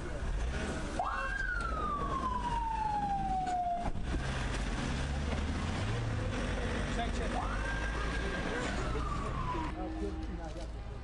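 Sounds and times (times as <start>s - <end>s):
street rumble: 0.0s - 11.0s
emergency vehicle siren wailing: 0.9s - 4.1s, 7.2s - 10.5s.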